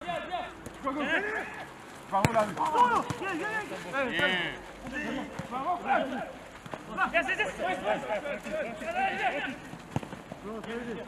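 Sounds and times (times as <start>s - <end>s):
men shouting: 0.0s - 1.7s, 2.4s - 9.7s.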